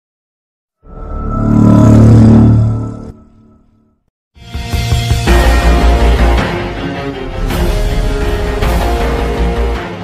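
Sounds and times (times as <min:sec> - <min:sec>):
deep swelling tone: 0:00.8 - 0:03.9.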